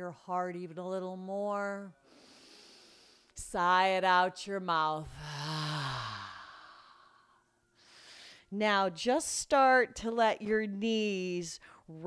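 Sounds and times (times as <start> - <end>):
woman sighing: 5.1 - 7.0
faint breath: 5.2 - 8.5.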